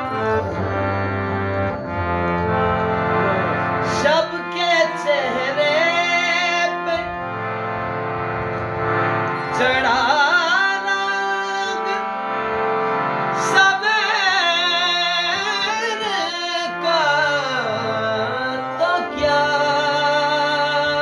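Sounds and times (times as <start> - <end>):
harmonium melody: 0.0 - 21.0.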